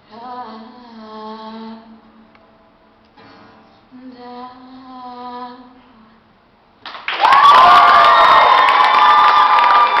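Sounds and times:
scattered clapping: 6.8 - 10.0
crowd cheering and shouting: 7.2 - 10.0.

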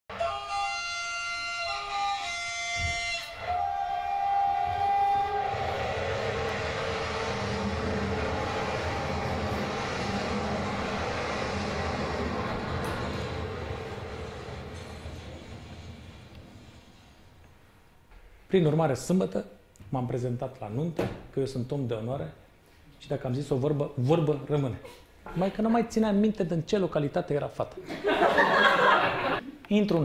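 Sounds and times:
train horn blasts: 0.1 - 10.9
moving train noise: 0.1 - 18.4.

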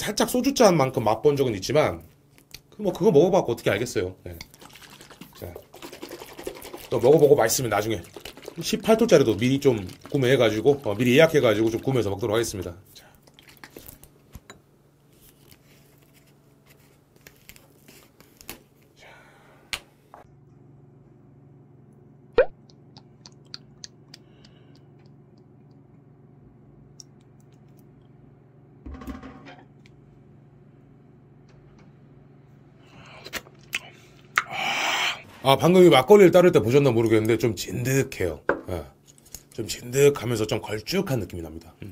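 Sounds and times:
low room hum: 0.0 - 41.9
liquid pouring into bowl: 4.4 - 12.1.

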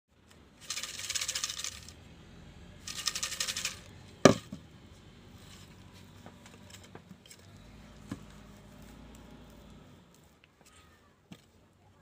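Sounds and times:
paper slips rattling in glass jar: 0.6 - 2.0, 2.8 - 3.9.

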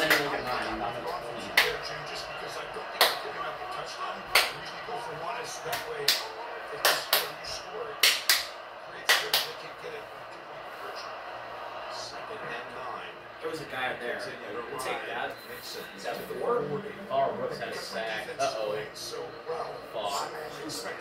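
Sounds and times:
television sports commentary: 0.0 - 21.0
sharp slaps: 8.0 - 8.5.

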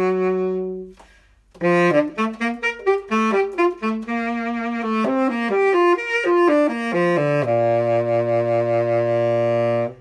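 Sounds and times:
tenor saxophone long low note: 1.6 - 10.0.

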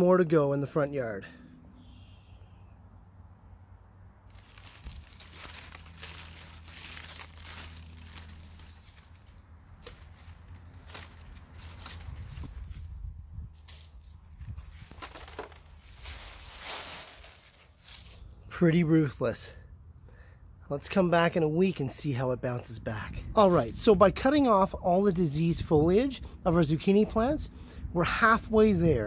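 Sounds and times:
dry leaves rustling and crackling: 4.2 - 18.5.

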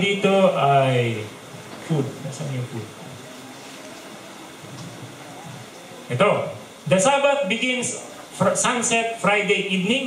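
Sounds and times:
hiss-like ambience: 0.0 - 10.0.

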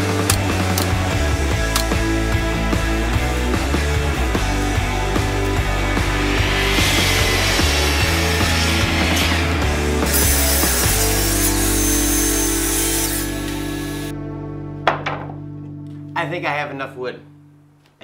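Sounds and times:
background music: 0.0 - 17.9
sharp click: 1.7 - 2.0
miter saw cutting wood: 4.6 - 14.1.

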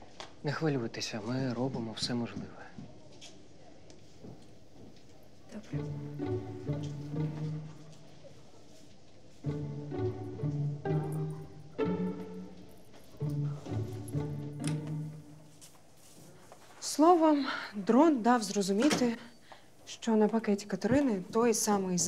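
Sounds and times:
low strings playing: 5.6 - 8.3, 9.4 - 15.7.

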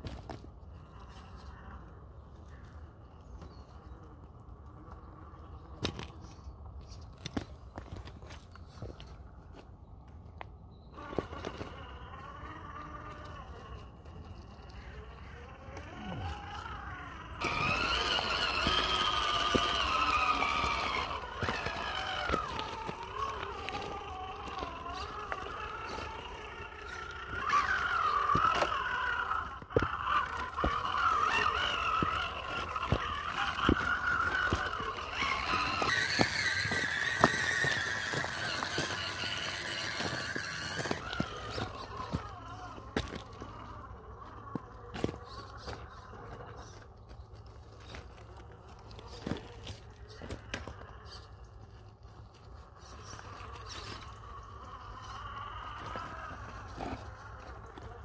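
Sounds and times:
electric motor whining: 10.9 - 58.0
tyres and stones ticking on rock: 17.4 - 58.0.

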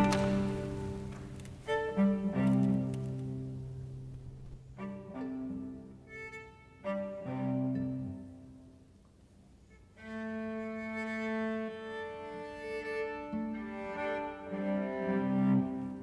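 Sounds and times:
viola and cello bowed notes: 0.0 - 8.9, 9.6 - 16.0.

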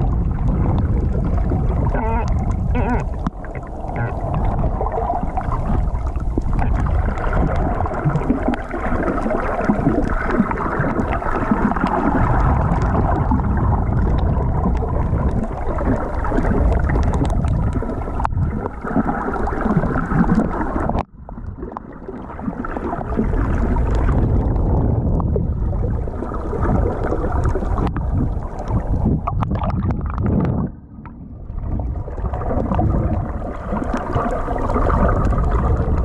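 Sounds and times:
muffled underwater rumble: 0.0 - 36.0
water swishing and gurgling: 0.0 - 36.0.

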